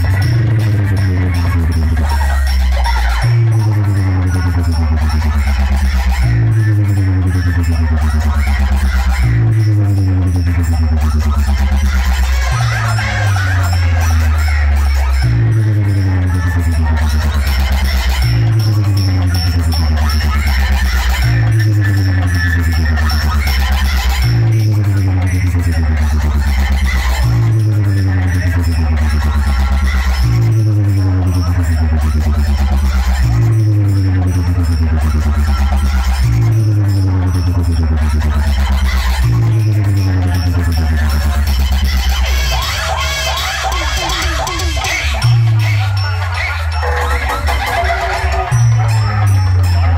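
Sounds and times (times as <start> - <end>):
loud electronic dance music: 0.0 - 49.9.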